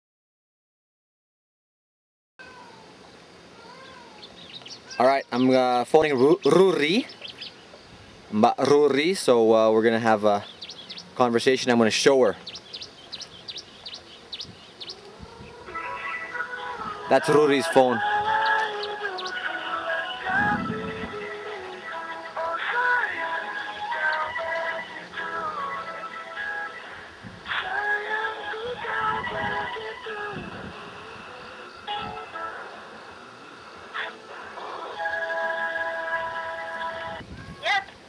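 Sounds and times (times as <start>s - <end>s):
song through phone loudspeaker: 15.6s - 33.0s, 34.0s - 37.2s.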